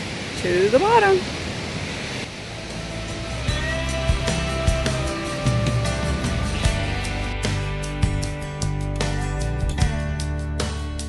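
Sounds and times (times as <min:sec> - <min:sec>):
waterfall rushing: 0:00.0 - 0:07.7
background music with beat: 0:02.6 - 0:11.0.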